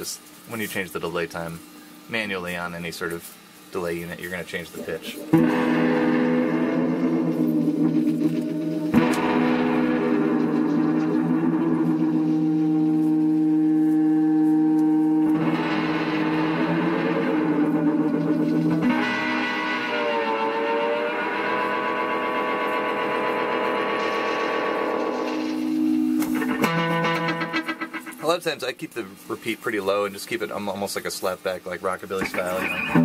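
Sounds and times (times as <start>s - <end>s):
guitar through tape delay: 4.8s - 28.7s, 32.2s - 33.0s.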